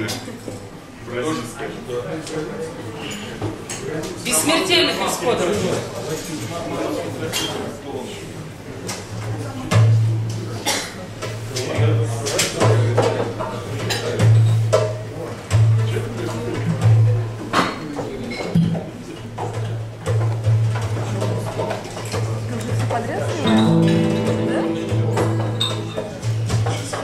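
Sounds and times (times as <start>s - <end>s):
background chatter: 0.0s - 27.0s
dishes and glasses clinking: 23.4s - 27.0s.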